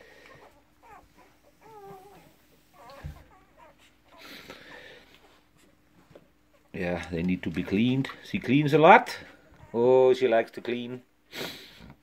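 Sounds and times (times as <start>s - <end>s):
puppies squeaking and whimpering: 0.1s - 6.8s, 9.2s - 10.2s.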